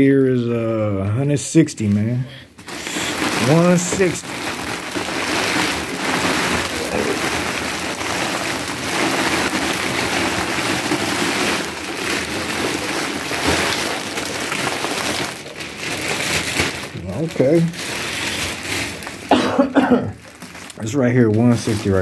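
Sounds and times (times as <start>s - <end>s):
plastic bag crinkling: 1.8s - 22.0s.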